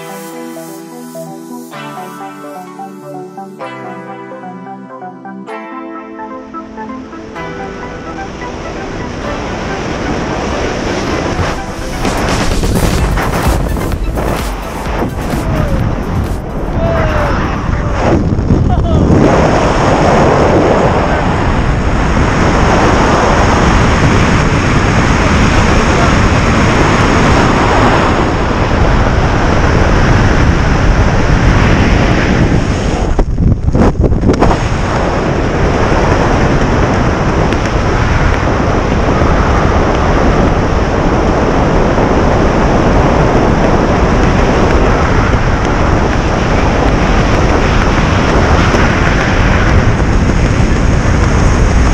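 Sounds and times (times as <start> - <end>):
wind rushing over microphone: 6.8 - 51.9.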